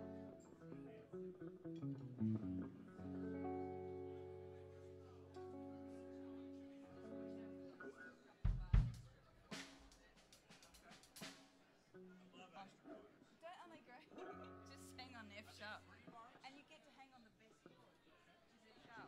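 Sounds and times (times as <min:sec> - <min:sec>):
soft electric guitar chords: 0:00.0 - 0:08.8
faint voices: 0:02.7 - 0:19.0.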